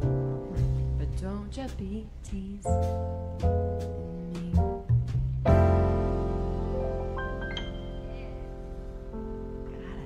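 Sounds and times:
double bass: 0:00.0 - 0:10.0
piano chord ringing: 0:05.5 - 0:10.0.

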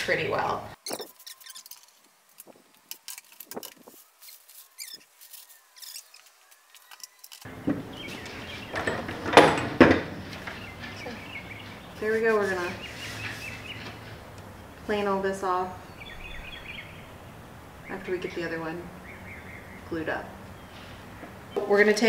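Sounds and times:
wax paper crackling and peeling: 0:00.8 - 0:07.5
pipe clamps clunking: 0:07.4 - 0:11.8.

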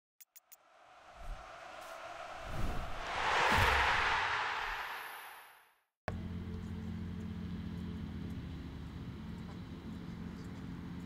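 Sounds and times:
whooshing swell: 0:00.6 - 0:05.7.

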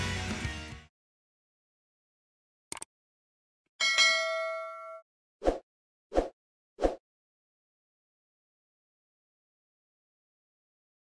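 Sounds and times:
notification bell ding: 0:03.8 - 0:05.0.

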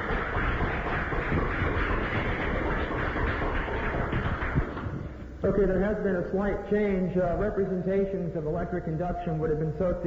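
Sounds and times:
audience applauding: 0:00.0 - 0:05.1.

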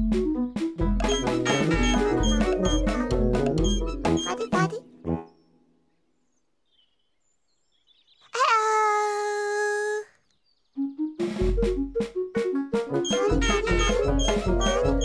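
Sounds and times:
jazzy brass and drums music: 0:00.0 - 0:05.2, 0:11.2 - 0:15.0.

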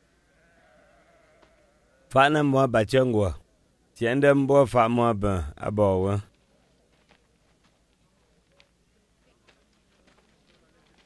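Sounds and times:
faint farm animal bleating: 0:00.3 - 0:02.1.

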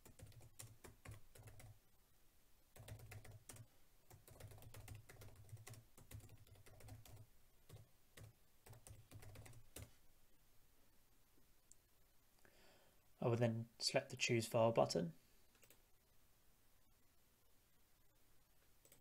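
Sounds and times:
typing on a computer keyboard: 0:00.0 - 0:01.8, 0:02.8 - 0:09.9.

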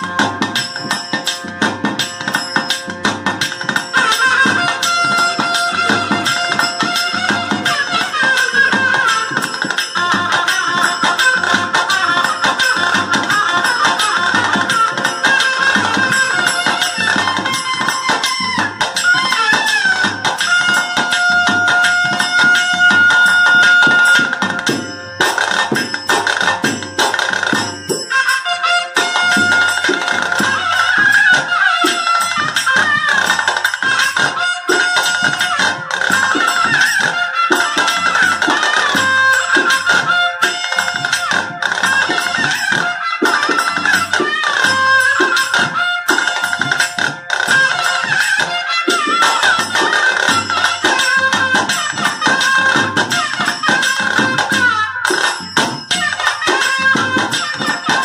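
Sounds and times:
jingling percussion: 0:00.0 - 0:58.0
reedy wind instrument melody: 0:00.0 - 0:58.0
steady drumming: 0:00.0 - 0:58.0.

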